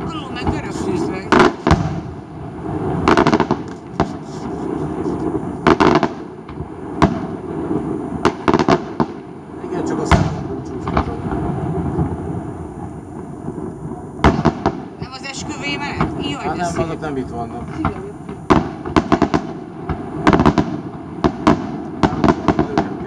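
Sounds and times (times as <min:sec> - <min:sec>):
fireworks bangs: 0:00.0 - 0:23.0
fireworks rumble and crackle: 0:00.0 - 0:23.0.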